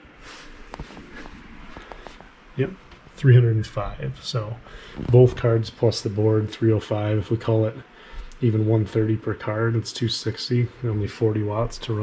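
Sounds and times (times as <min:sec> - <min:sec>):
clothing rustle: 0:00.2 - 0:03.2, 0:04.6 - 0:05.5
footsteps: 0:00.2 - 0:06.1, 0:07.8 - 0:09.2.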